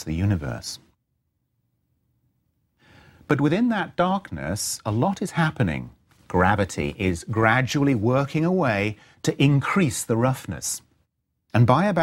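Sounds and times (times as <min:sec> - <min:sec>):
faint intake of breath: 0:02.8 - 0:03.3.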